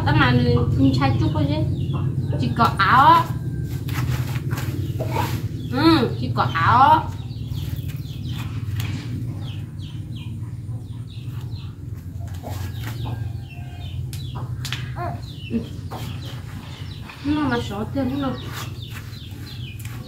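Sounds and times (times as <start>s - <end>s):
steady low hum: 0.0s - 20.0s
chicken clucks and chirps: 0.6s - 20.0s.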